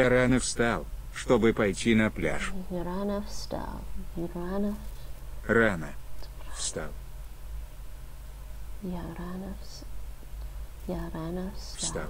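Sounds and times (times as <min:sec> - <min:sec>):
low steady hum: 0:00.0 - 0:12.0
woman half-whispering: 0:11.6 - 0:12.0.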